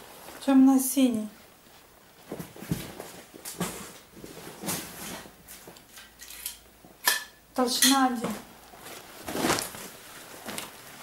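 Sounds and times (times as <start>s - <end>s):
leather hides rustling and flapping: 8.5s - 11.0s.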